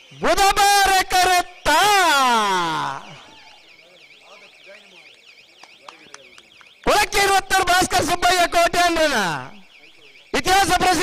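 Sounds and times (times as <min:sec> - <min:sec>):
crowd murmuring: 0:00.0 - 0:11.0
man announcing: 0:00.0 - 0:11.0.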